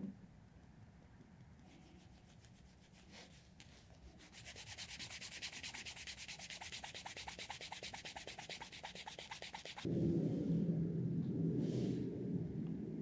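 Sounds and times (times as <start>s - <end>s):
sandpaper scratching leather: 1.7s - 9.9s.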